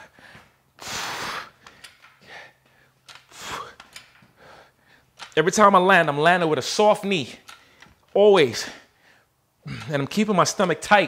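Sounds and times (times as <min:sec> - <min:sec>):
man breathing hard: 0:00.0 - 0:05.2, 0:08.7 - 0:09.8.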